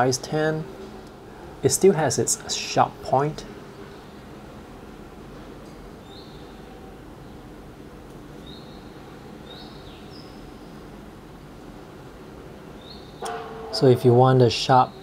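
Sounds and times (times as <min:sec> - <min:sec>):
room noise: 0:00.0 - 0:15.0.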